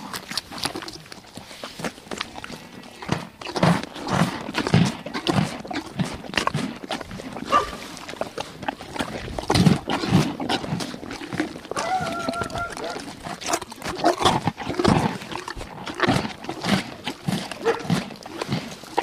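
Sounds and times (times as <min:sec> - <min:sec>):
zebras calling: 0:11.7 - 0:13.1.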